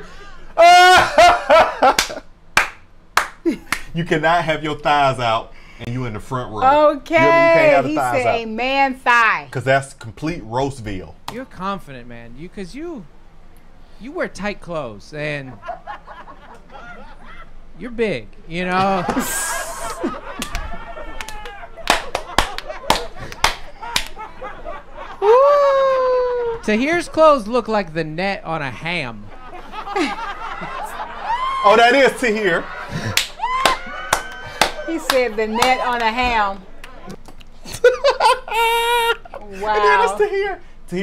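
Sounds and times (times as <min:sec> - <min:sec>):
man laughing: 0:00.0 - 0:02.2, 0:03.4 - 0:03.9, 0:15.4 - 0:17.5, 0:18.7 - 0:27.3, 0:29.2 - 0:33.2, 0:37.0 - 0:40.4
man clapping hands: 0:01.8 - 0:03.9, 0:19.8 - 0:24.2, 0:33.0 - 0:37.6.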